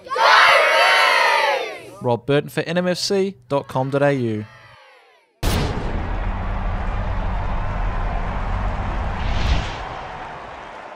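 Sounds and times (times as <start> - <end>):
sudden impact: 5.4 - 10.7
deep steady rumble: 5.7 - 10.3.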